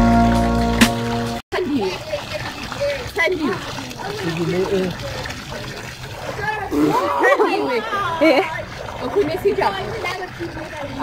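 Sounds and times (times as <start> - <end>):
water pouring into pool: 0.0 - 11.0
people talking: 1.6 - 11.0.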